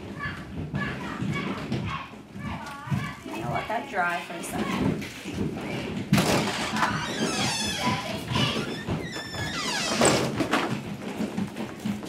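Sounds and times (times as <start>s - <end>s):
children chattering: 0.0s - 5.0s, 5.6s - 10.0s.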